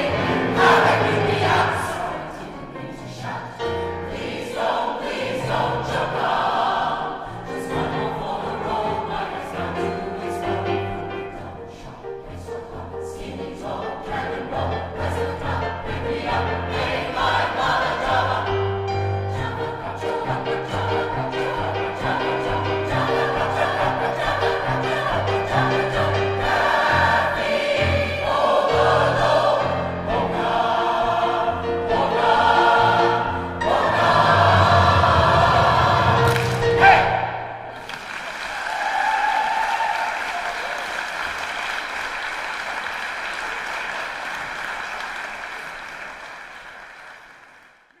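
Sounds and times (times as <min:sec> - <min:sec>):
choir singing a polka: 0:00.0 - 0:37.8
audience applause: 0:37.7 - 0:48.0.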